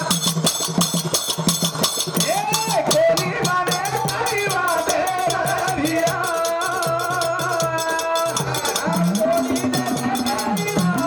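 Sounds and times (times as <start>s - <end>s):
drum strokes with metallic edge: 0.0s - 11.0s.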